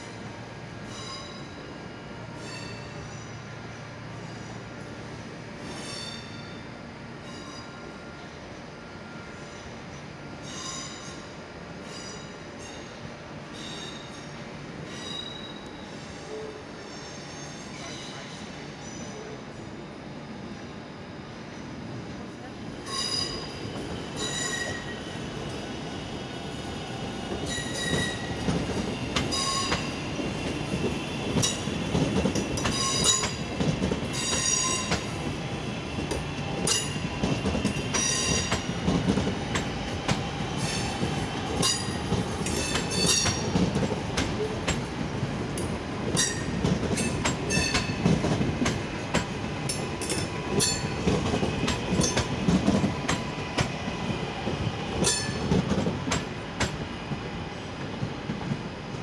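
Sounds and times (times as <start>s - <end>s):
train rumbling: 0.0s - 59.0s
high-pitched wheel squeals: 24.2s - 25.0s, 27.5s - 28.3s.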